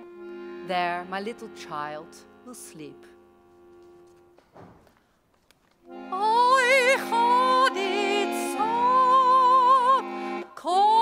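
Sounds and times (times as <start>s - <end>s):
accordion chord: 0.0s - 4.5s, 5.8s - 11.0s.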